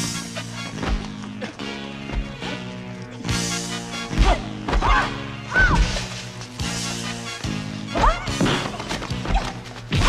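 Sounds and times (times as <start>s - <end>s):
background film music: 0.0s - 10.0s.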